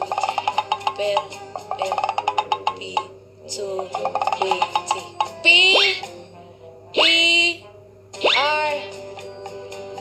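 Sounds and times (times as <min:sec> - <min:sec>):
soft background music: 0:00.0 - 0:10.0
cartoon pitch sweep effect: 0:05.6 - 0:06.1, 0:07.0 - 0:07.3, 0:08.2 - 0:08.7.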